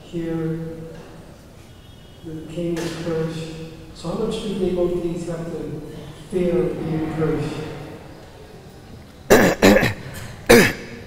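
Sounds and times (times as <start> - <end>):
man coughing: 9.3 - 11.0.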